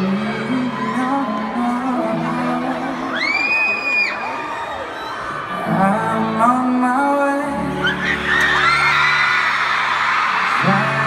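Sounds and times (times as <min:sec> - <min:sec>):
arena crowd cheering: 0:00.0 - 0:06.6, 0:07.8 - 0:11.0.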